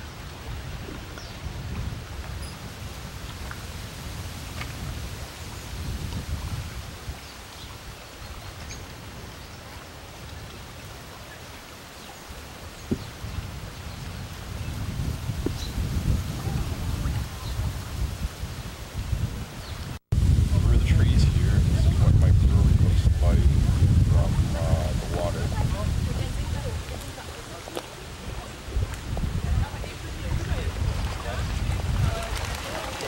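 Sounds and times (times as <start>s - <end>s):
wind buffeting microphone: 0.0s - 11.0s, 12.5s - 33.0s.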